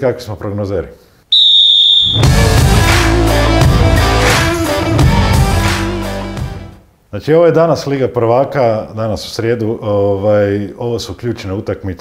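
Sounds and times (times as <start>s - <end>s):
loud high whistle blast: 1.3s - 2.5s
rock music with electric guitar: 2.2s - 6.8s.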